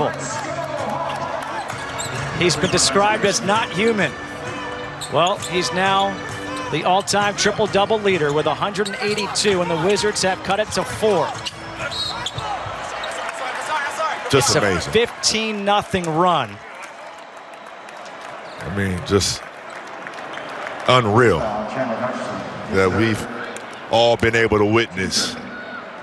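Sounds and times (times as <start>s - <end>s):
music playing: 0.0s - 13.0s
arena crowd din: 0.0s - 26.0s.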